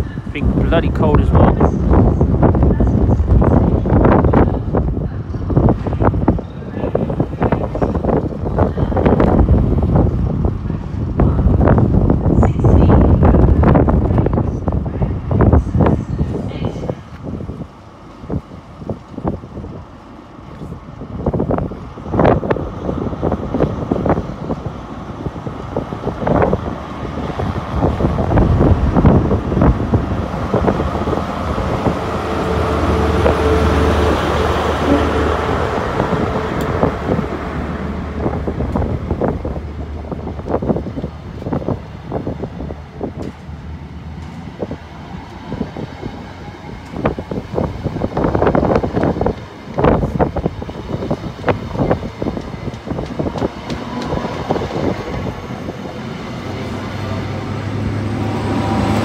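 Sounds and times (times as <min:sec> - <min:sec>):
diesel train engine hum: 0:00.0 - 0:59.0
train coaches rumbling past: 0:00.0 - 0:59.0
wind buffeting microphone: 0:00.0 - 0:59.0.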